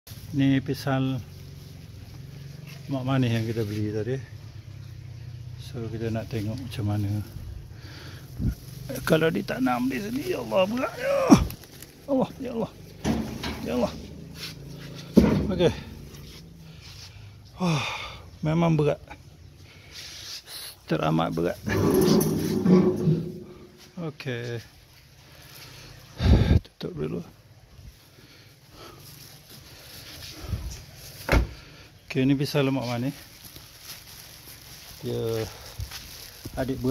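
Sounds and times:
handling noise: 0:09.0 - 0:16.6, 0:21.6 - 0:23.8
car door closing thud: 0:31.3 - 0:31.6.

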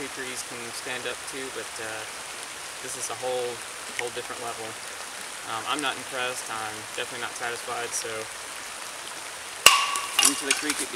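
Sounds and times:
creek water running: 0:00.0 - 0:10.9
metal blade clanging on rock: 0:09.7 - 0:10.9.

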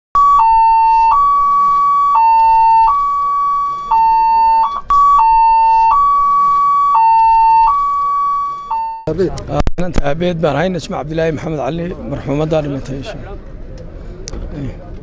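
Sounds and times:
ambulance siren two-tone: 0:00.2 - 0:09.1.

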